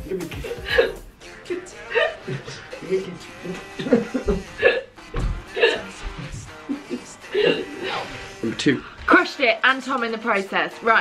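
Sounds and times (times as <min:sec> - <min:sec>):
background music: 0:00.0 - 0:11.0
people laughing breathily: 0:01.8 - 0:04.9
low thuds: 0:05.1 - 0:06.6.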